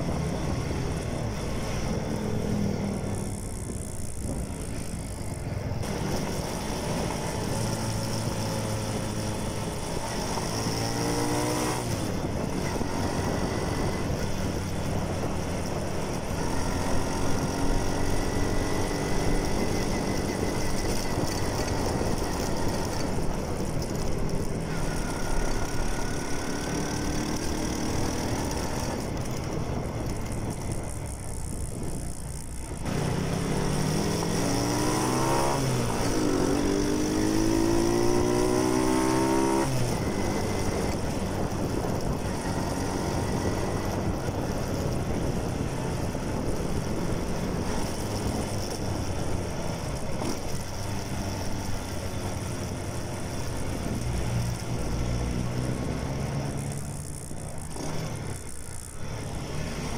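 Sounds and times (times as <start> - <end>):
mini bike engine running: 0.0 - 59.9
wind noise: 0.0 - 59.9.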